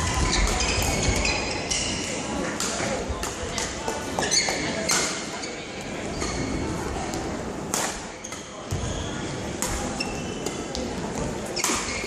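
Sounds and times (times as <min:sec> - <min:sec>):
racket hitting shuttlecock: 0:07.7 - 0:08.1, 0:09.6 - 0:10.9, 0:11.6 - 0:12.0.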